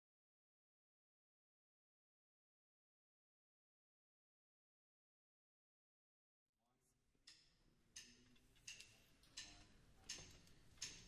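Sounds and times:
drumsticks clicking together: 0:08.0 - 0:11.0.

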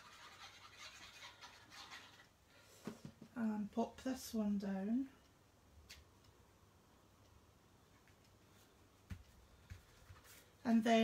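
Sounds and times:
applicator rubbing on paper: 0:00.0 - 0:02.2.

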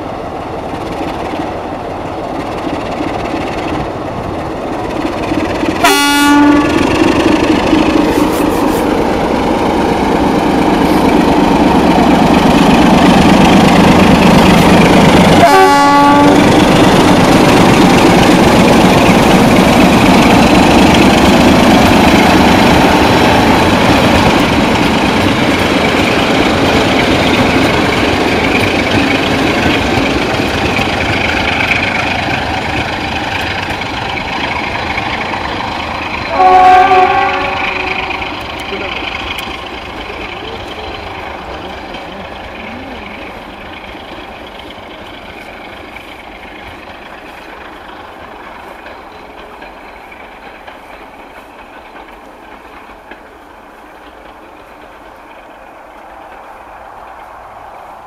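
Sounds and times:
train engine and wheels rumbling: 0:00.0 - 0:58.0
train horn blasts: 0:05.8 - 0:06.8, 0:15.4 - 0:16.5, 0:36.3 - 0:38.3.

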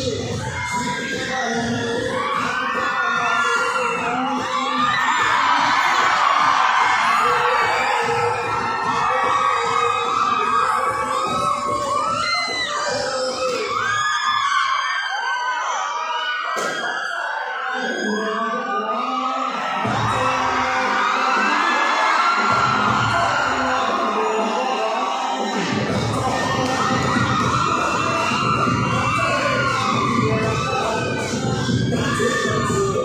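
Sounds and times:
dance music with steady beat: 0:00.0 - 0:14.8, 0:19.5 - 0:33.0
crowd shouting and whooping: 0:00.0 - 0:33.0.

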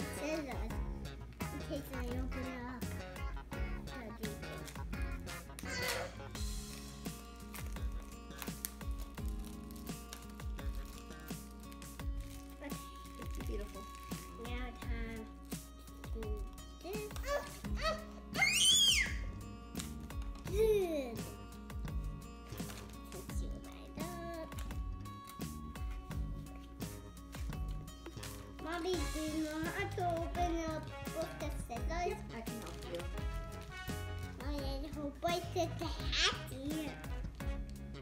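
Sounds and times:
young child's wordless voice: 0:00.0 - 0:00.8, 0:01.4 - 0:03.0, 0:16.1 - 0:18.5, 0:20.5 - 0:21.3, 0:23.0 - 0:24.7, 0:28.6 - 0:33.0, 0:34.4 - 0:37.1
background music: 0:00.0 - 0:38.0.

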